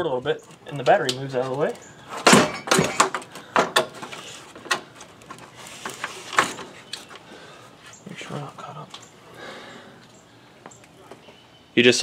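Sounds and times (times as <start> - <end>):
plastic shroud clunking and scraping: 0.8 - 6.9.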